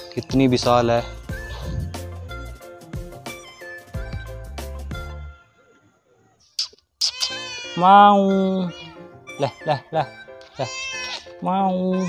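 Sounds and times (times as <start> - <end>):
cat meowing: 7.0 - 12.0.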